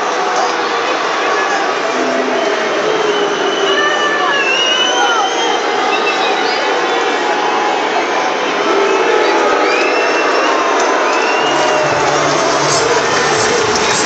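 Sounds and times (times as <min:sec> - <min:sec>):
stadium crowd cheering: 0:00.0 - 0:14.0
whistles: 0:02.2 - 0:07.2, 0:09.6 - 0:12.3.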